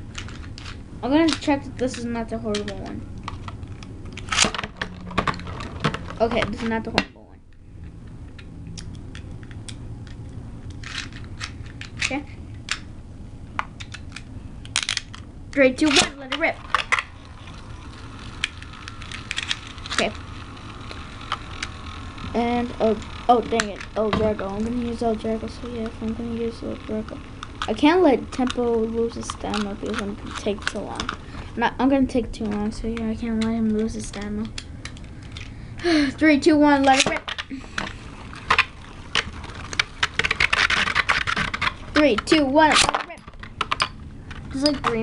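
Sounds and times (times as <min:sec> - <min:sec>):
low steady hum: 0:00.0 - 0:45.0
spinning top clicking in bowl: 0:15.8 - 0:31.2.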